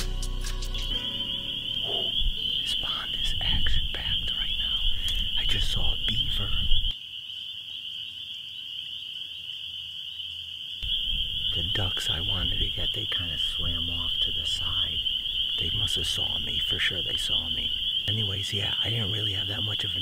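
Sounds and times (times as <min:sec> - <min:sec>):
high-pitched frog chorus: 0:00.8 - 0:20.0.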